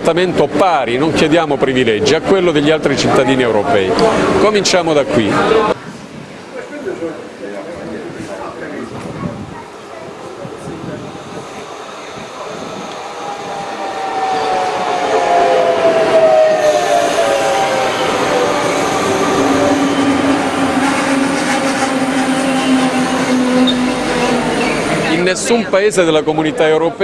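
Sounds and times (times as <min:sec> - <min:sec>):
train pulling into station: 0:02.9 - 0:26.3
train whine falling in pitch: 0:11.6 - 0:25.1.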